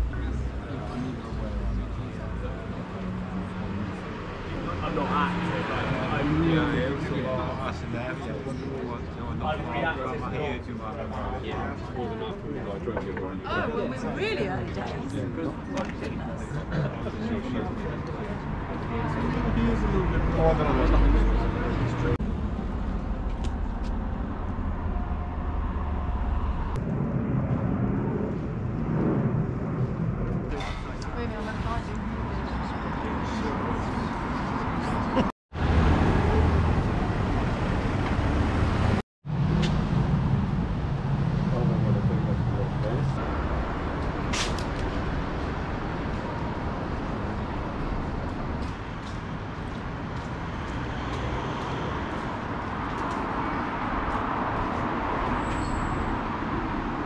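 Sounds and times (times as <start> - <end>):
cars passing: 0.0 - 26.8, 29.2 - 57.0
steady traffic noise: 0.0 - 57.0.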